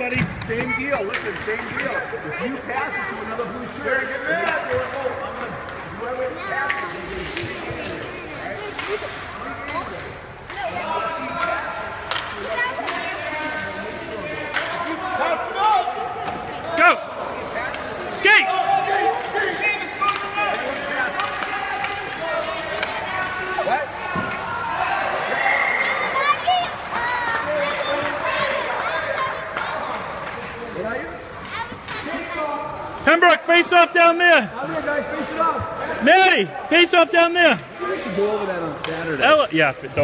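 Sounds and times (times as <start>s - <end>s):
voices talking and calling out: 0.0s - 40.0s.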